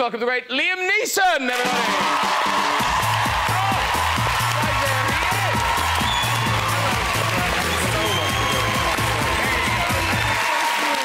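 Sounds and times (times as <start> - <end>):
audience applause and cheering: 1.5 - 11.0
music with repeating bass line: 2.6 - 10.4.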